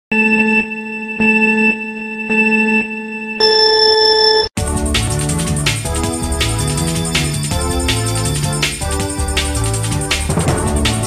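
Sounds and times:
electronic countdown beeps: 0.1 - 4.5.

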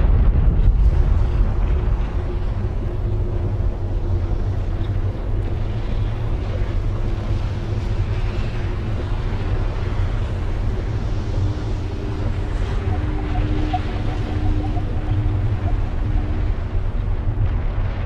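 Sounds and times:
low rumbling noise: 0.0 - 18.0
faint held tone: 11.3 - 17.0.

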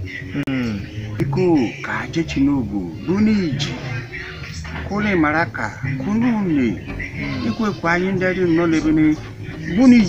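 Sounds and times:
man speaking: 0.4 - 3.9, 4.8 - 10.0.

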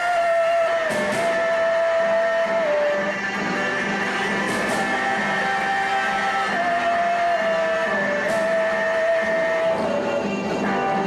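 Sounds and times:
drums: 0.0 - 11.0
electric guitars: 0.0 - 11.0.

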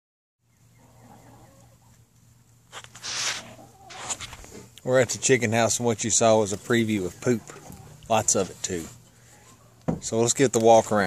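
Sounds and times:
chickens clucking softly: 0.5 - 2.3, 3.3 - 4.6, 6.5 - 8.6
rustling noise: 2.7 - 4.7.

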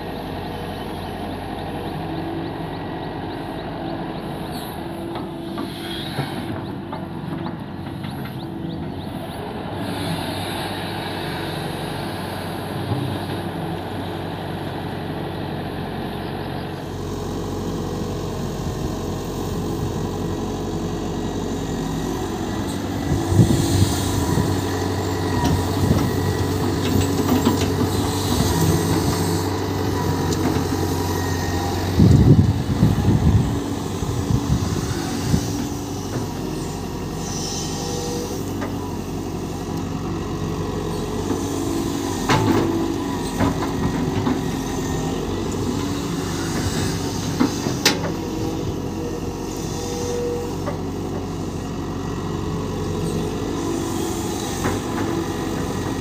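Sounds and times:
excavator diesel engine running: 0.0 - 56.0.

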